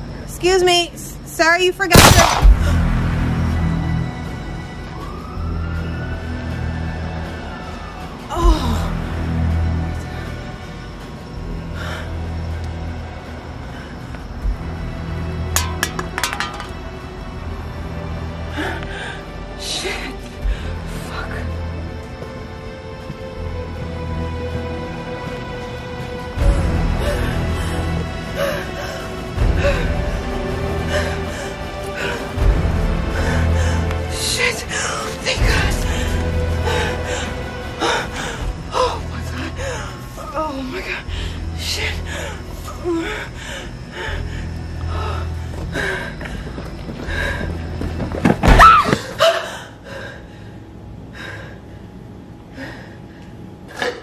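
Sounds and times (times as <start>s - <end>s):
droning suspense film score: 0.0s - 54.0s.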